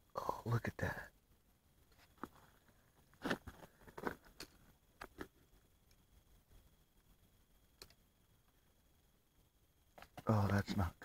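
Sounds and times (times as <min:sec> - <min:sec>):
faint rustling and crunching: 0:01.8 - 0:06.8.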